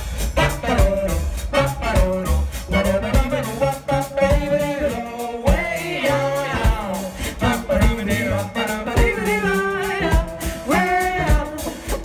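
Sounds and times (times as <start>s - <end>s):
accordion: 0.0s - 12.0s
drums: 0.0s - 12.0s
upright double bass: 0.0s - 12.0s.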